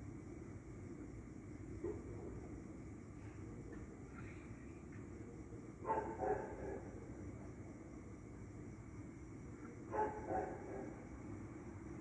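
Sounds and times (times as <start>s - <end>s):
low background noise: 0.0s - 12.0s
dog barking: 5.8s - 6.9s, 9.9s - 10.9s.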